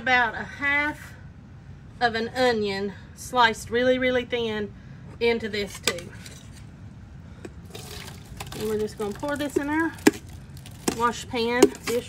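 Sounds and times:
liquid pouring and splashing: 7.6 - 10.8.

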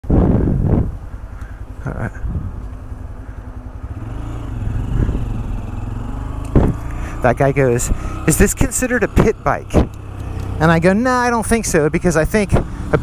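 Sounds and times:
motorcycle engine running: 0.2 - 13.0.

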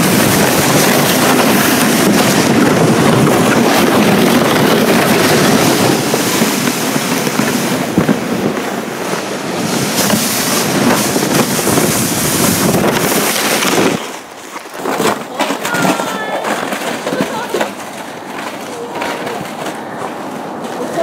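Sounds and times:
sled bumps: 0.0 - 21.0
sled scraping over snow: 0.0 - 21.0
wind buffeting microphone: 0.0 - 21.0.

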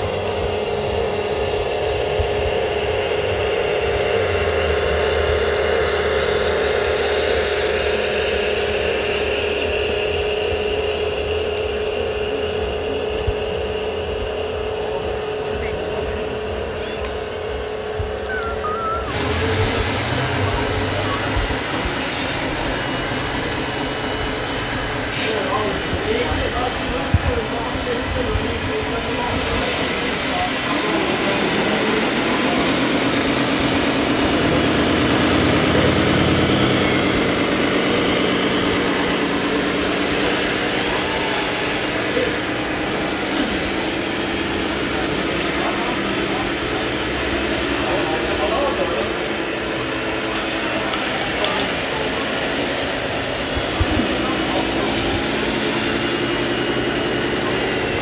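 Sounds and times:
crowd chatter: 0.0 - 58.0
model loader motors humming: 0.0 - 58.0.

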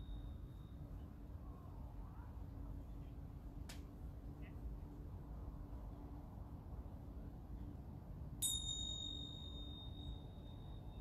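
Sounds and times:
small metal bell ringing: 0.0 - 0.8, 8.4 - 11.0
faint low outdoor rumble: 0.0 - 11.0.

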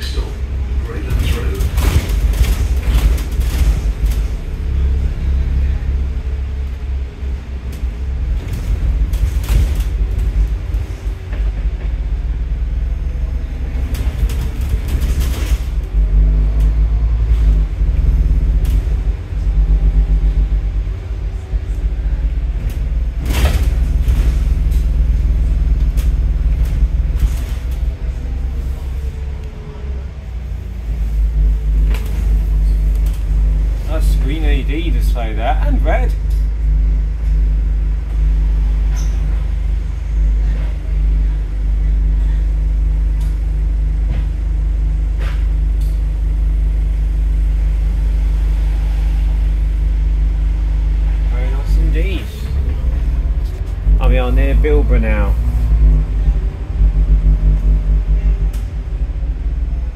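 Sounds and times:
bus diesel engine rumble: 0.0 - 59.9.

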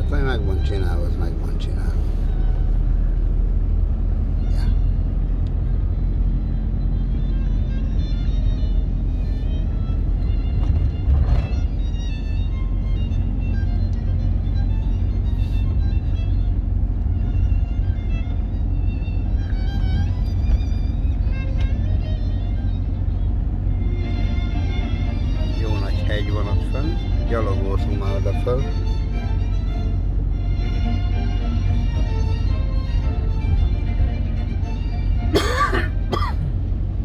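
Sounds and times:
car road and engine rumble: 0.0 - 37.0
music playing: 6.0 - 37.0.

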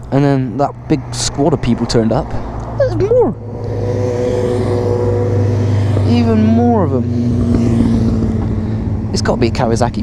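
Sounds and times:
motorcycle approaching: 0.0 - 10.0.

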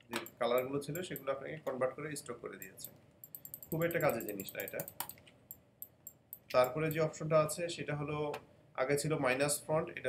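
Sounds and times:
keyboard and mouse clicks: 0.1 - 1.3, 2.6 - 7.1.

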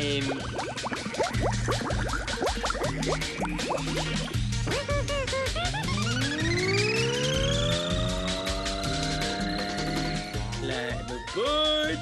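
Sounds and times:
rising pitched sound effect: 0.0 - 4.4, 5.8 - 10.7
background music with steady beat: 0.0 - 12.0.

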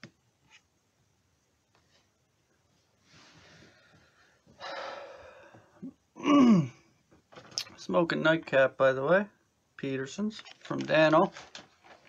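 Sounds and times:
man exhaling: 4.6 - 6.8
man sighing: 4.6 - 6.9.

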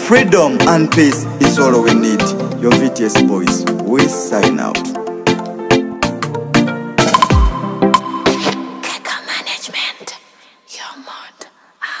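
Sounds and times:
person whispering: 8.8 - 12.0.

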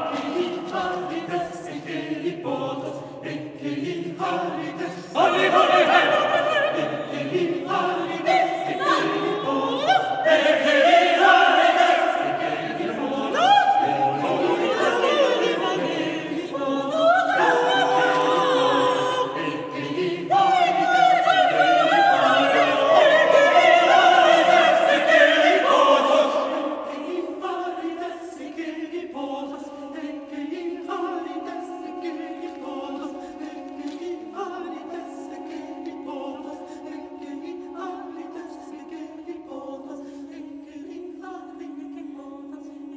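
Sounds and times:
choir singing in reverberant hall: 0.0 - 42.9.

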